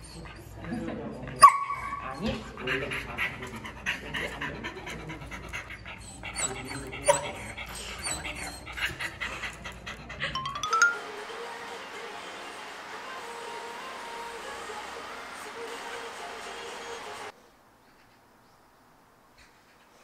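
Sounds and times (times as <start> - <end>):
voices: 0.0 - 17.4
dog panting rapidly: 2.0 - 10.4.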